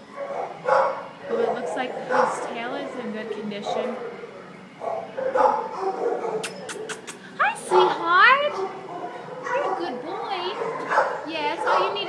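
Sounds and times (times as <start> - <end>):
dogs whining and yipping: 3.8 - 8.0.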